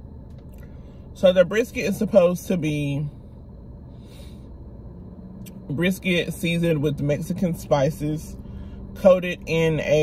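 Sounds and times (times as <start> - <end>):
car cabin hum: 0.0 - 10.0
soft breath: 3.8 - 4.6.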